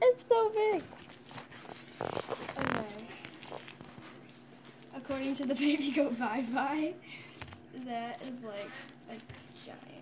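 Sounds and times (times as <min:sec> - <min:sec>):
diaper rustling: 0:00.5 - 0:10.0.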